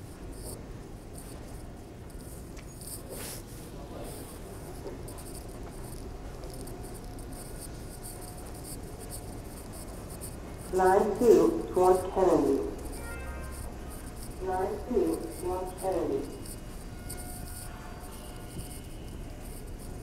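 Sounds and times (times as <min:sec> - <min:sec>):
subway platform background noise: 0:00.0 - 0:20.0.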